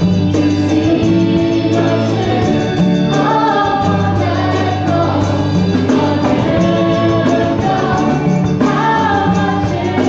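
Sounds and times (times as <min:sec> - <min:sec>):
group singing worship song: 0:00.0 - 0:10.0
live band playing: 0:00.0 - 0:10.0.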